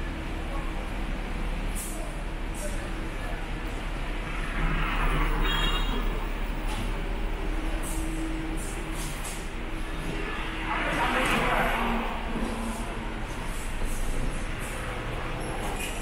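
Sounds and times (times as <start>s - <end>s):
cars going by: 3.6s - 16.0s
vehicle passing with high squeal: 4.2s - 6.4s.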